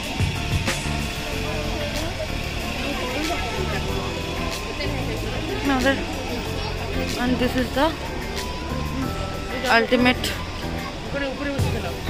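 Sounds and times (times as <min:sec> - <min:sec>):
music with stepping bass line: 0:00.0 - 0:11.0
voices: 0:00.0 - 0:12.0.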